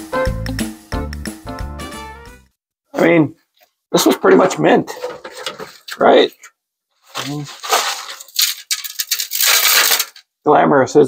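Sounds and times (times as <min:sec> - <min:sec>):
rust flakes crunching and scraping: 0:07.0 - 0:10.2
small clinking bits: 0:07.2 - 0:10.2.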